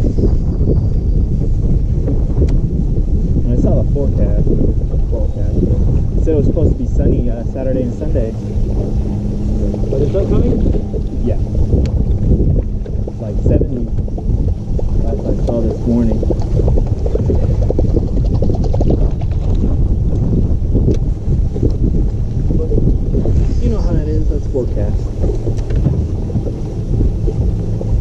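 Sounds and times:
water slapping against hull: 0.0 - 28.0
wind buffeting microphone: 0.0 - 28.0.

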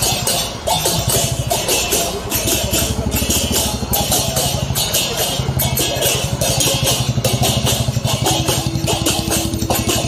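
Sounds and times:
jingling percussion: 0.0 - 10.0
motorcycle engine running: 0.0 - 10.0.

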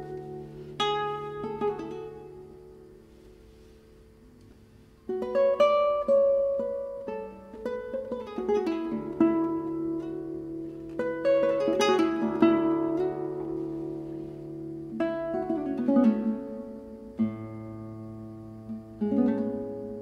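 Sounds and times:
solo classical guitar: 0.0 - 20.0.

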